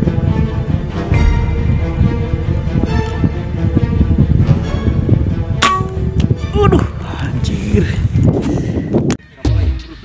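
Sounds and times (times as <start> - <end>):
background music with steady beat: 0.0 - 6.6.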